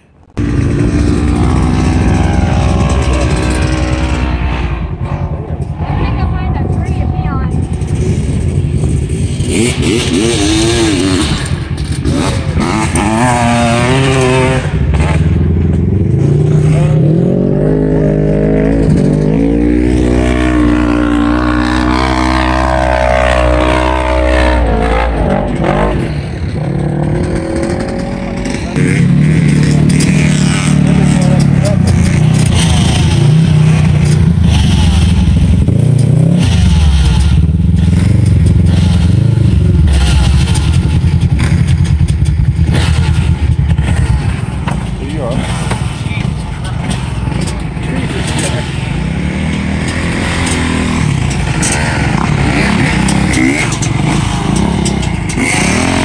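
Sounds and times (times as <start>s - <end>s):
engine revving with rising pitch: 0.4s - 15.4s, 16.0s - 44.5s, 47.3s - 56.0s
loud engine running hard: 0.4s - 56.0s.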